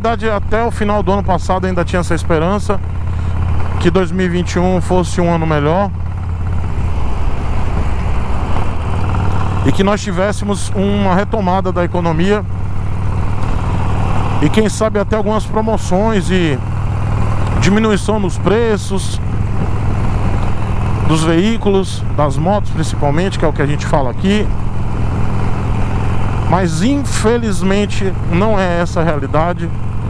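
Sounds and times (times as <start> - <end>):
motorcycle engine running: 0.0 - 30.0
road noise: 0.0 - 30.0.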